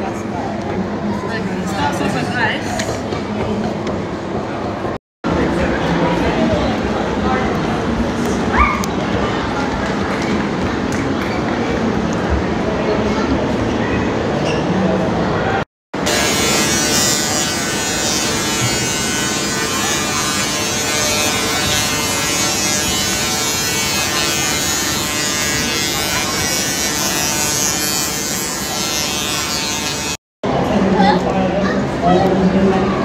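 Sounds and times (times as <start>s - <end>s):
hubbub of voices: 0.0s - 33.0s
loud buzzing drone: 16.0s - 30.2s.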